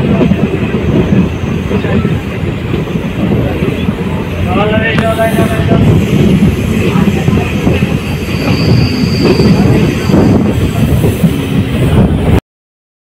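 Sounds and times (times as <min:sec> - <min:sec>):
train rumbling on track: 0:00.0 - 0:12.4.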